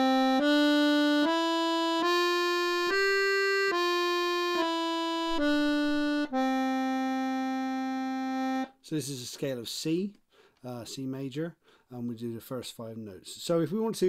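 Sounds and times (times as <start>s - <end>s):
accordion playing a scale: 0.0s - 8.8s.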